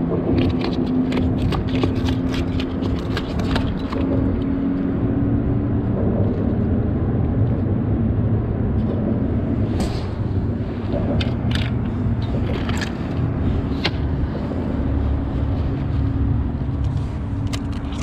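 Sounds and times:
motor rumbling: 0.0s - 18.0s.

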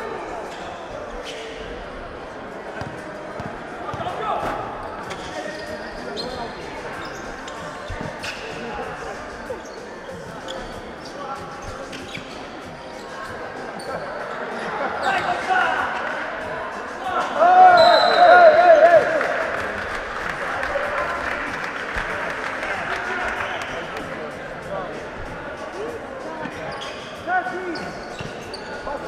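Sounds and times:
players' voices: 0.0s - 29.0s
sneaker squeaks: 0.5s - 1.8s, 2.8s - 15.5s, 26.4s - 29.0s
shouts and cheering: 17.2s - 19.8s.

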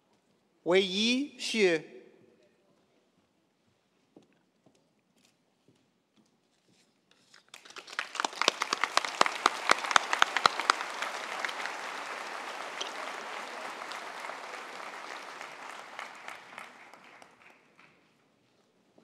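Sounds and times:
crowd clapping: 7.5s - 18.1s
loud sharp claps close by: 7.6s - 18.0s.

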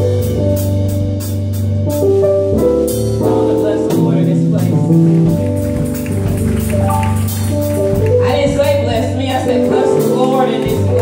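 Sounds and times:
church worship music: 3.2s - 11.0s
hand clapping: 5.1s - 8.6s, 9.3s - 11.0s.

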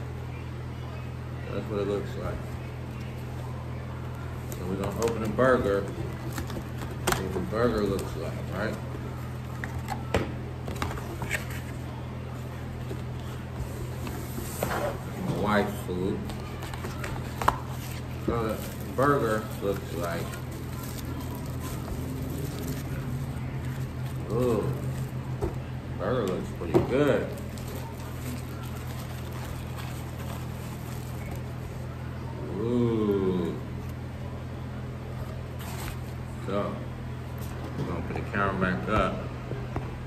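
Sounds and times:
steady low hum: 0.0s - 40.0s
cardboard box and foil rustling: 12.9s - 25.2s, 27.2s - 31.8s.

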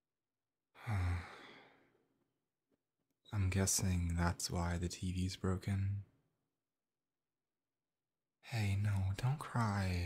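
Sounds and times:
man sighing: 0.8s - 1.8s.

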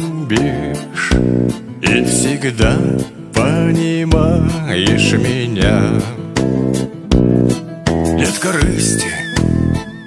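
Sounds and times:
guitar playing chords: 0.0s - 10.0s.

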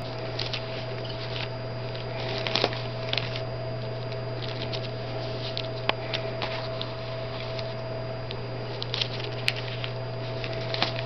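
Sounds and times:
steady electrical hum: 0.0s - 11.0s
fingers handling sticker sheets: 8.6s - 11.0s.

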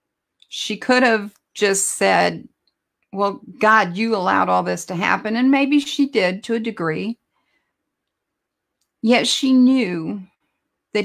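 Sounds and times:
woman speaking: 0.4s - 2.5s, 3.2s - 7.2s, 9.0s - 10.3s.

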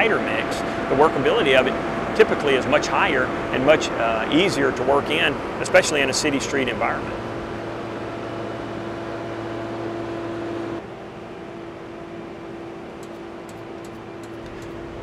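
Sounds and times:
asphalt paver mechanical hum: 0.0s - 15.0s.

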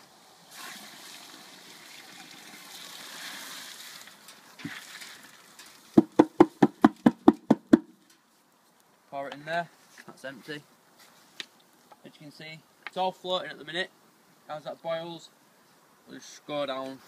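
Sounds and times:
water and seeds pouring into pan: 0.4s - 6.0s
sharp knocks on bucket: 6.0s - 7.9s.

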